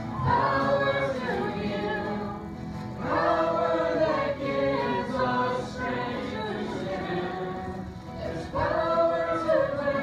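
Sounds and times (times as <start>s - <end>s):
acoustic guitar: 0.0s - 10.0s
congregation singing a hymn: 0.0s - 10.0s.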